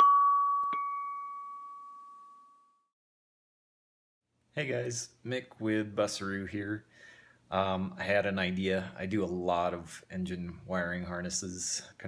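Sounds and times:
bell-like jingle tone: 0.0s - 2.9s.

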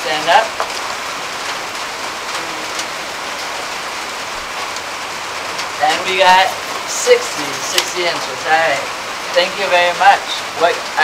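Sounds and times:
rain hiss: 0.0s - 11.0s.

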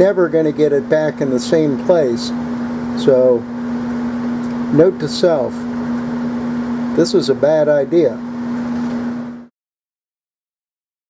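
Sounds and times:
workshop machine hum: 0.0s - 9.5s.

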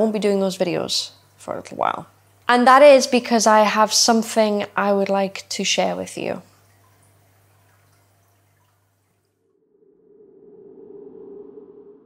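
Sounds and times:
low hum: 9.2s - 12.0s
low whooshing drone: 9.5s - 12.0s.

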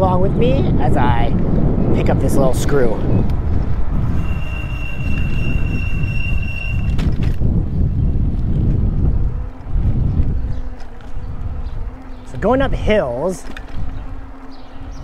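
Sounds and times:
wind buffeting microphone: 0.0s - 15.0s
thin high whine: 4.0s - 7.2s.

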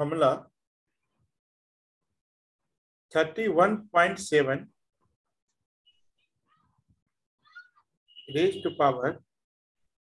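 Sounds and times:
faint high-pitched cry: 6.4s - 8.0s.

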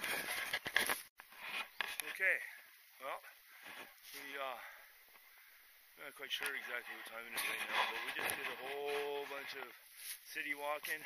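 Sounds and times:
rustle: 0.0s - 11.0s
man talking: 4.1s - 4.8s, 6.0s - 11.0s.

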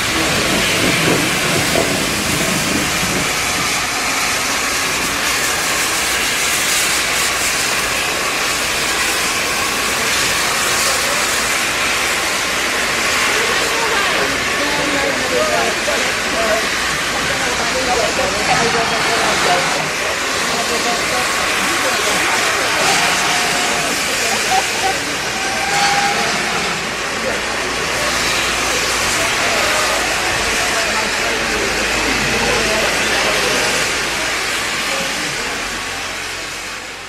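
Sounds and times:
onlookers' voices: 0.0s - 37.0s
steam locomotive hissing: 0.0s - 37.0s.

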